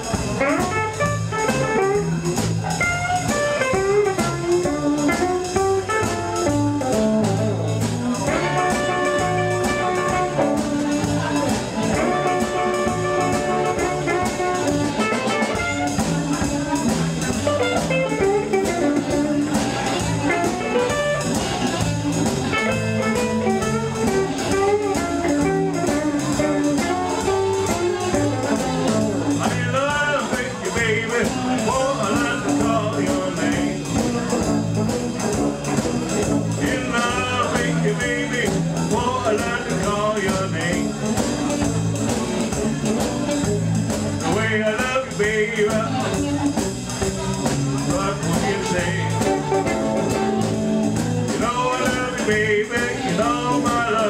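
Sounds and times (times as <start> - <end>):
drums: 0.0 - 54.0
electric bass: 0.0 - 54.0
electric guitar: 0.0 - 54.0
blues harmonica bent notes: 0.4 - 29.6, 46.2 - 52.0.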